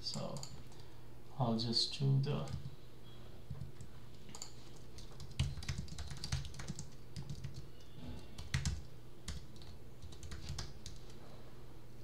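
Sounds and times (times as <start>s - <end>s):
faint low hum: 0.0s - 12.0s
keyboard typing clicks: 0.1s - 0.8s, 3.5s - 11.2s.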